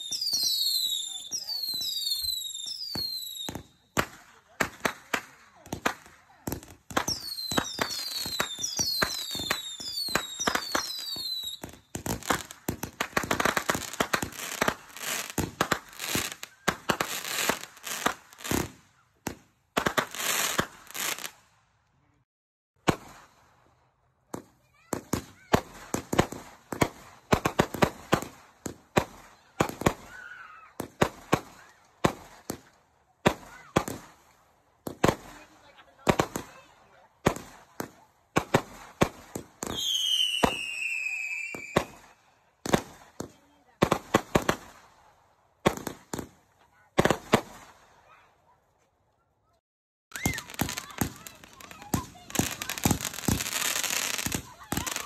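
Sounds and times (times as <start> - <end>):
falling firework whistle: 0.0 - 3.7, 39.6 - 42.2, 50.1 - 50.9
fireworks bangs and crackles: 0.0 - 21.6, 22.8 - 48.4, 50.1 - 55.0.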